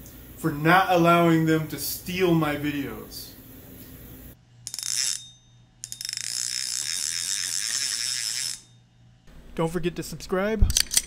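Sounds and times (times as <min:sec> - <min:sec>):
ratchet-like clicking: 0:04.6 - 0:08.8.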